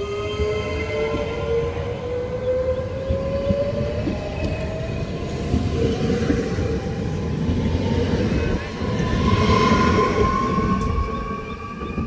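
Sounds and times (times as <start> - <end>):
train wheels rumbling on rails: 0.0 - 12.0.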